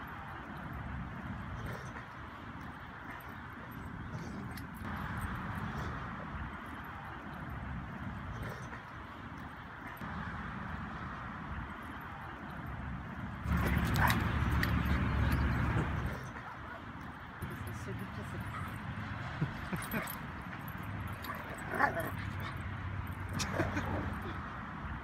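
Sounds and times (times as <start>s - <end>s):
dogs play-fighting: 0.0s - 11.0s, 11.7s - 24.5s
steady outdoor noise: 0.0s - 25.0s
dog yipping: 21.1s - 22.6s.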